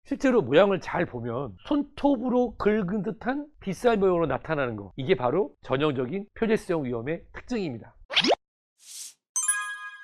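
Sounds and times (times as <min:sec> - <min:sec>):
bright chime: 0:09.4 - 0:10.0.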